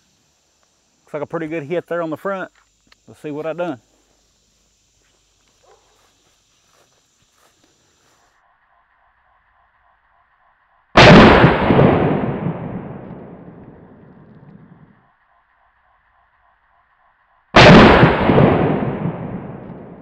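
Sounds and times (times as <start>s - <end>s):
shotgun shot with echo: 11.0s - 14.0s, 17.6s - 20.0s.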